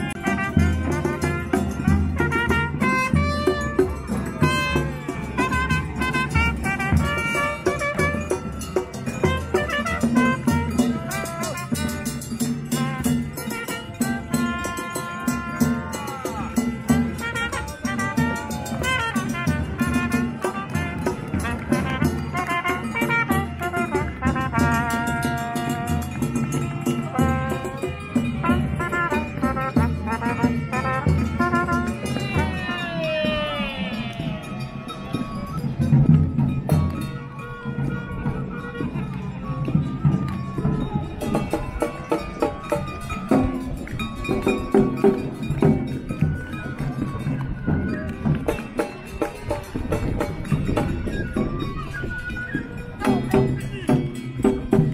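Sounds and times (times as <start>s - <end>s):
trumpet melody: 0.0s - 36.0s
drum set and bass drum beat: 0.0s - 37.1s.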